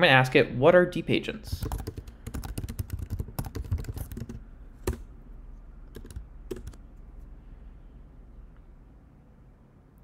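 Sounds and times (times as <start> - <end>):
computer keyboard typing: 1.5 - 5.1, 5.9 - 6.8.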